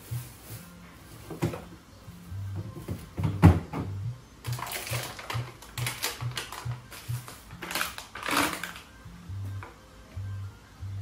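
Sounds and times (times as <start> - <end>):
background music with bass pulse: 0.0 - 11.0.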